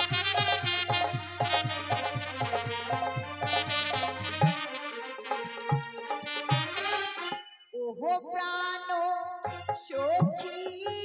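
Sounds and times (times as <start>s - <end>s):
band music: 0.0s - 7.4s
person singing through microphone: 7.8s - 11.0s.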